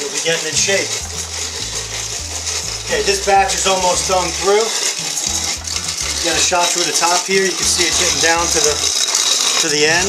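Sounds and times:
hand-cranked grain mill grinding: 0.0s - 10.0s.

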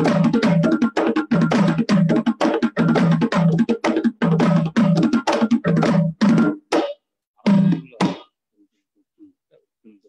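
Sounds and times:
drum strokes ringing: 0.0s - 8.2s.

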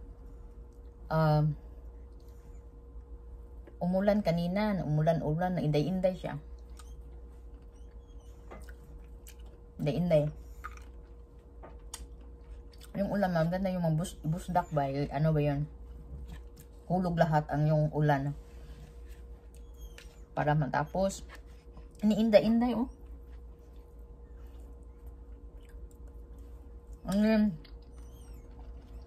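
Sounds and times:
steady low hum: 0.0s - 29.0s
faint chewing: 1.8s - 2.9s, 6.5s - 13.2s, 15.8s - 17.0s, 18.6s - 20.4s, 22.9s - 29.0s
chewing close to microphone: 8.4s - 9.7s, 10.4s - 13.0s, 23.1s - 27.0s.

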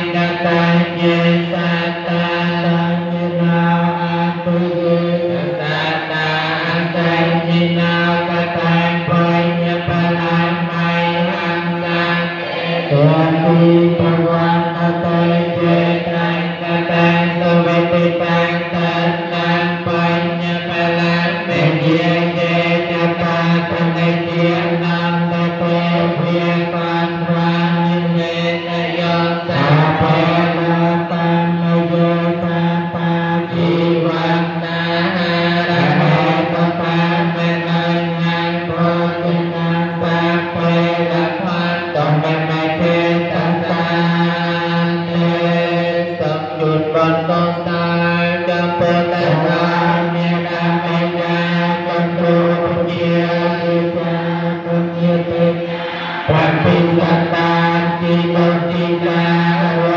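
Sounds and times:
voices chanting held notes: 0.0s - 59.9s.

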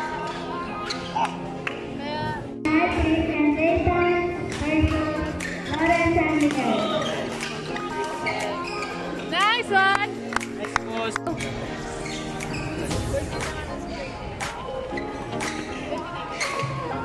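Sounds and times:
background music: 0.0s - 17.0s
voices in a hall: 0.0s - 17.0s
shoes squeaking on court floor: 6.6s - 9.3s, 12.0s - 13.0s, 14.9s - 16.8s.

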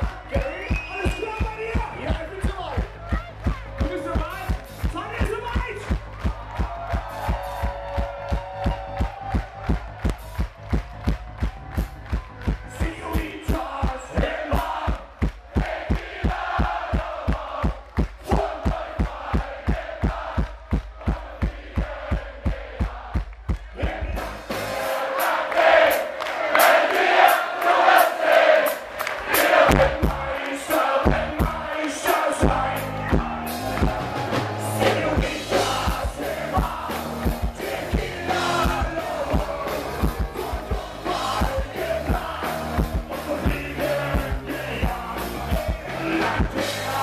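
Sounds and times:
kick drum beat: 0.0s - 24.2s, 31.0s - 31.7s
crowd chanting and singing: 0.0s - 47.0s
live rock band playing: 29.4s - 47.0s
person singing: 29.6s - 47.0s.

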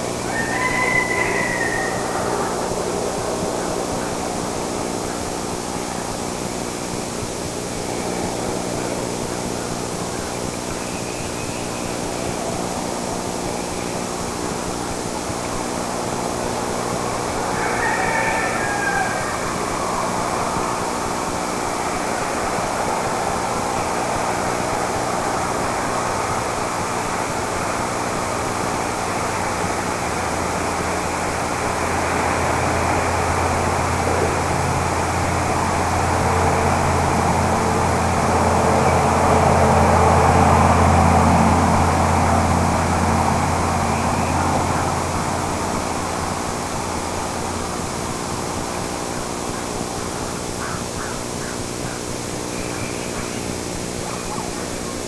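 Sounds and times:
distant engine drone: 0.0s - 55.0s
steady hiss: 0.0s - 55.0s.

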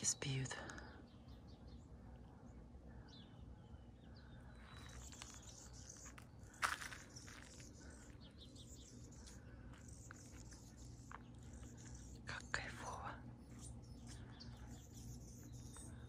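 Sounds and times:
low background rumble: 0.0s - 16.0s
small birds chirping: 0.0s - 16.0s.

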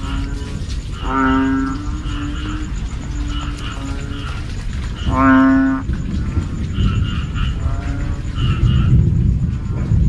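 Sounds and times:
bullfrogs calling: 0.0s - 10.0s.

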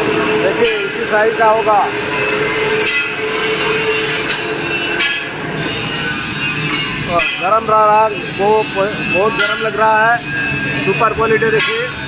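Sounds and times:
candy making machine running: 0.0s - 5.0s.

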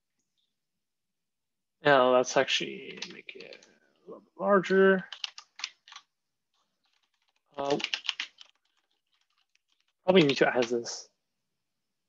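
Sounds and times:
keyboard typing: 2.8s - 3.8s, 5.0s - 10.9s.

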